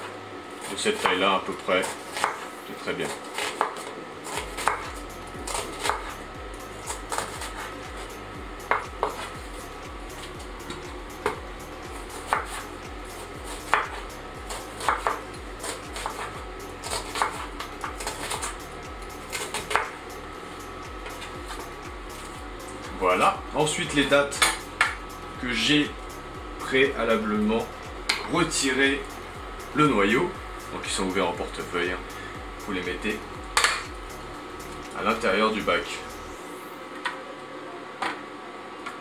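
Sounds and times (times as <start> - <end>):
knife chopping on wooden board: 1.8 - 2.4, 3.2 - 4.9, 5.5 - 6.1, 6.9 - 7.7, 8.7 - 9.4, 10.6 - 11.4, 12.1 - 12.6, 13.5 - 18.6, 19.3 - 20.0.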